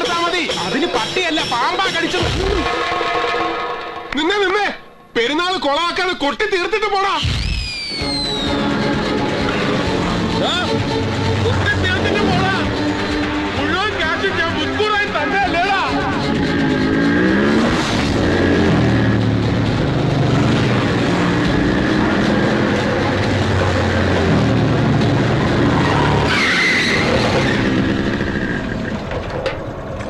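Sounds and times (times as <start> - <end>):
motorcycles riding past: 8.6 - 30.0
engine revving hard: 15.1 - 28.9.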